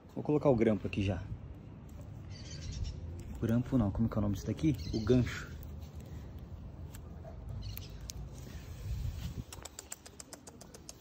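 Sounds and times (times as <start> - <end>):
puppy claws clicking on tiles: 9.4 - 11.0.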